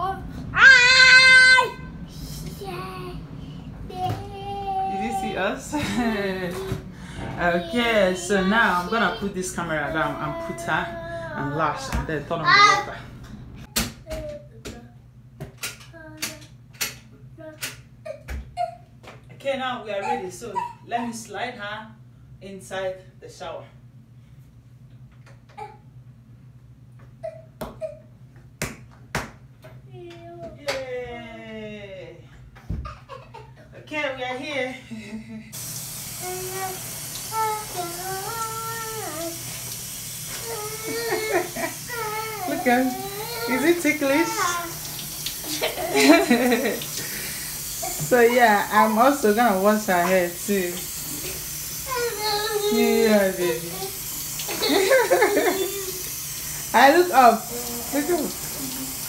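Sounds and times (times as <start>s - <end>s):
shower head spraying water: 35.6s - 59.0s.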